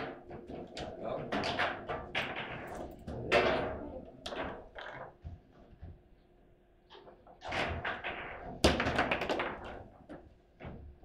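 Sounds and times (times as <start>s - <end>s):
table football clacks and rattles: 0.0s - 6.1s, 6.9s - 11.0s
table football ball hit: 7.8s - 9.7s.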